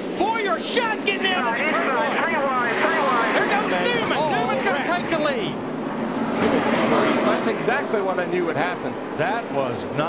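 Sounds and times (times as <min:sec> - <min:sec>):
race car engines droning: 0:00.0 - 0:10.0
voices talking excitedly: 0:00.1 - 0:10.0.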